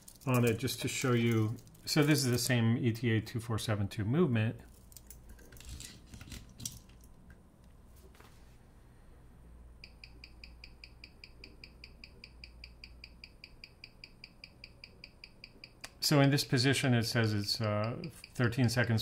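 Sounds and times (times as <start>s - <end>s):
mechanical watch ticking: 9.8s - 16.0s, 17.4s - 18.8s.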